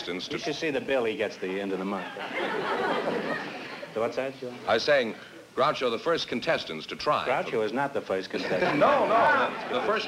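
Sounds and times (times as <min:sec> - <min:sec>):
audience laughing: 0:02.0 - 0:04.0, 0:08.4 - 0:10.0.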